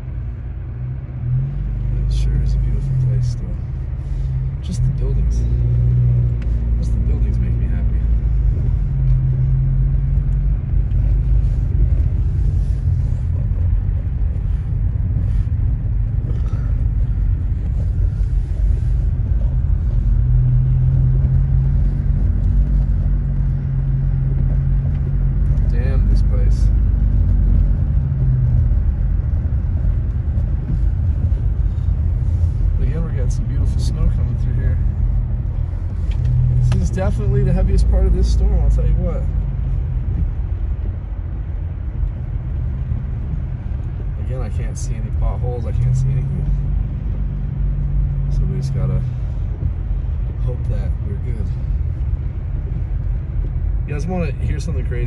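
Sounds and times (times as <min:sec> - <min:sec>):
car driving on wet road: 0:00.0 - 0:55.0.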